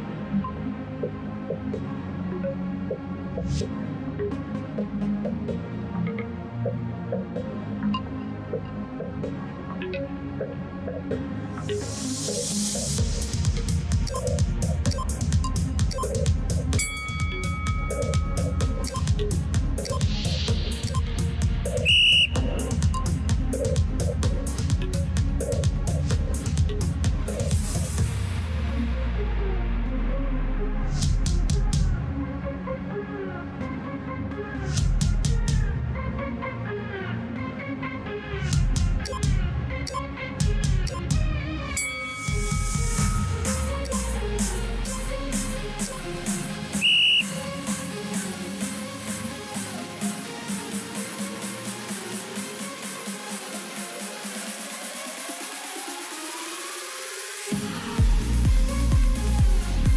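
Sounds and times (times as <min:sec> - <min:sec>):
electronic dance music: 0:00.0 - 0:35.7, 0:36.6 - 0:59.9
shrill whistle blast: 0:21.7 - 0:23.0, 0:41.8 - 0:43.6, 0:46.7 - 0:47.5
short high whistle blast: 0:21.8 - 0:22.7, 0:46.8 - 0:47.4.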